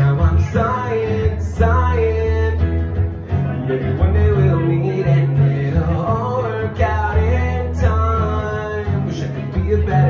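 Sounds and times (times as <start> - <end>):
man singing: 0.0 - 10.0
strummed acoustic guitar: 0.0 - 10.0.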